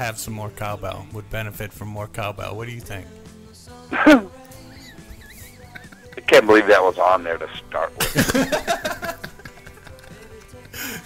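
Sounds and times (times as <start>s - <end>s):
faint background music: 0.0s - 11.0s
burst of laughter: 8.0s - 10.4s.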